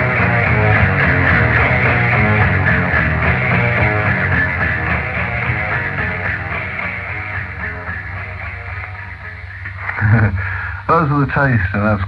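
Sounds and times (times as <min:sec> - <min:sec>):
blues rock band playing: 0:00.0 - 0:10.3.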